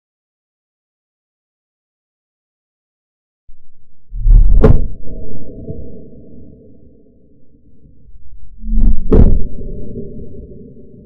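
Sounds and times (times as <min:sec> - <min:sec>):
low deep steady rumble: 0:03.5 - 0:11.0.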